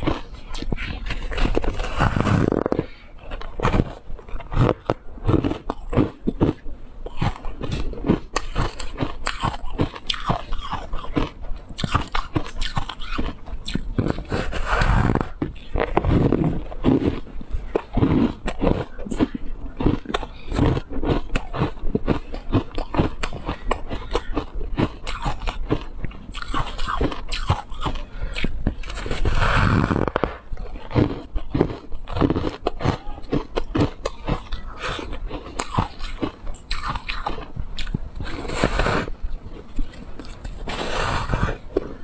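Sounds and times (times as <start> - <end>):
chewing crunchy ice: 0.0 - 42.0.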